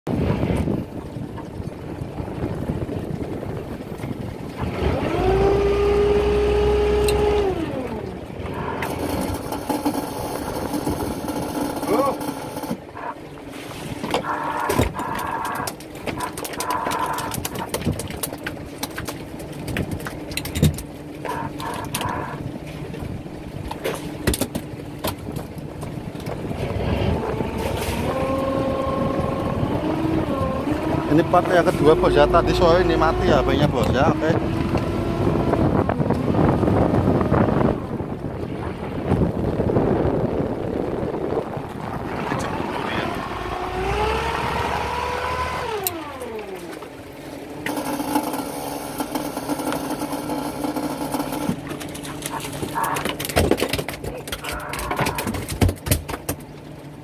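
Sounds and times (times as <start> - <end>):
boat engine running: 0.1 - 57.0
motor whine: 42.4 - 47.0.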